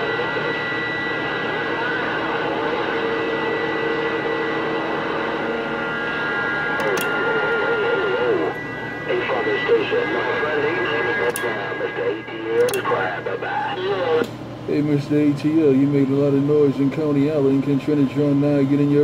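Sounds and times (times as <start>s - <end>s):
garbled radio voices: 0.0s - 2.8s, 6.8s - 14.3s
radio whistling tones: 0.0s - 14.2s
radio hiss: 0.0s - 15.2s
short clicks: 6.8s - 7.1s.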